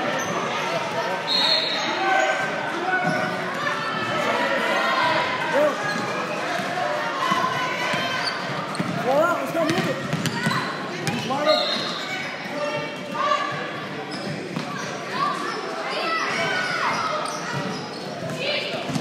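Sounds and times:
shouts and chatter: 0:00.0 - 0:19.0.

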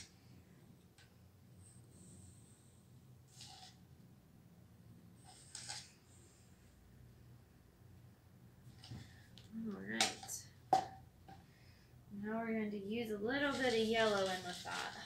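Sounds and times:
steady low hum: 0:00.0 - 0:14.8.

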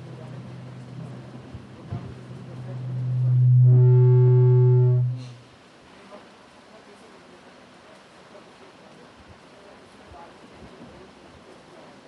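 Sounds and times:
low-pitched electronic tone: 0:02.6 - 0:05.4
faint higher tones: 0:02.6 - 0:05.5.

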